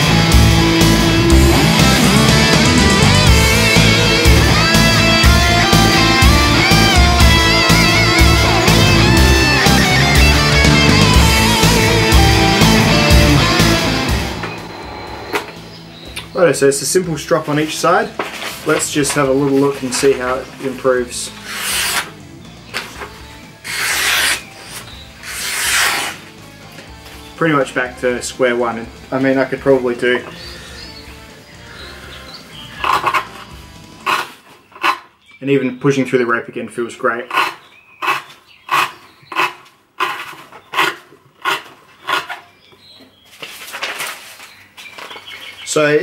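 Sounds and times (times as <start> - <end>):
knife slicing through paper: 21.4 - 22.1, 23.6 - 26.2.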